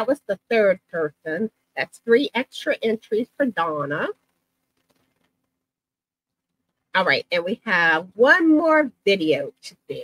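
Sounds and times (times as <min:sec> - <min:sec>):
woman speaking: 0:00.0 - 0:04.2, 0:07.0 - 0:10.0.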